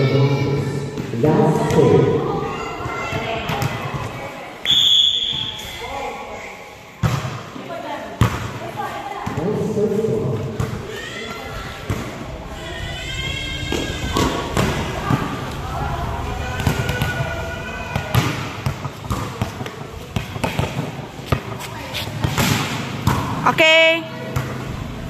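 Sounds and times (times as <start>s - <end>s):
players shouting calls: 10.3s - 18.8s.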